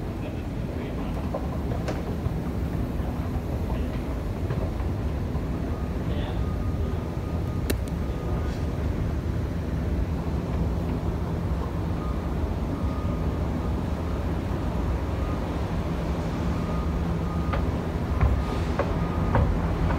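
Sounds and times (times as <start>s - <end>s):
sharp click: 7.6s - 8.0s.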